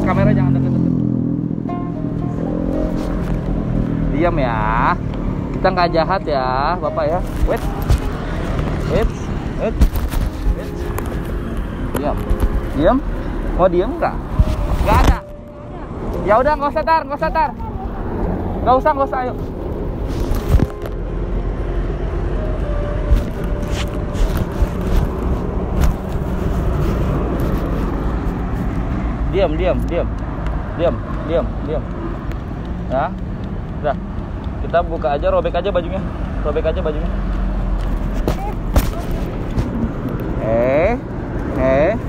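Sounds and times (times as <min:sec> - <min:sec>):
road traffic rumble: 0:00.0 - 0:42.0.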